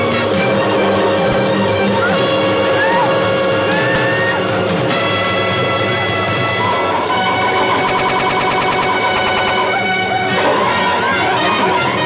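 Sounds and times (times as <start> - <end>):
fast pulsing musical figure: 0.0 - 12.0
orchestral film score chords: 0.0 - 12.0.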